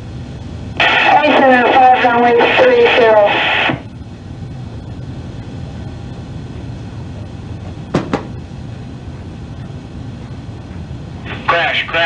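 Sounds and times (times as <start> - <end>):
radio channel rumble and hiss: 0.0 - 12.0.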